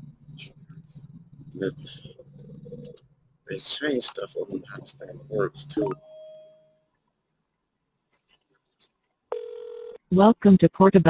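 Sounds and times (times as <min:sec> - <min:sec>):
phone ringback ring: 0:09.3 - 0:10.0.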